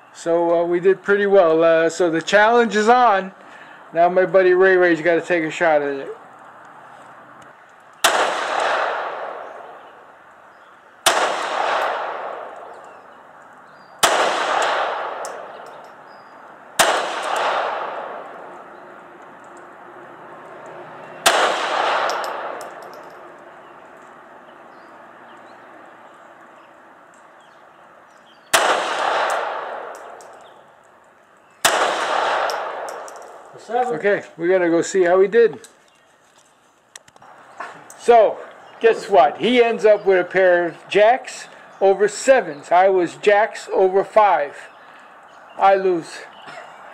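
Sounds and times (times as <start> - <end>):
pistol shots with echo: 8.0 - 9.8, 11.0 - 12.8, 14.0 - 16.0, 16.8 - 18.5, 21.2 - 23.2, 28.5 - 30.4, 31.6 - 33.5.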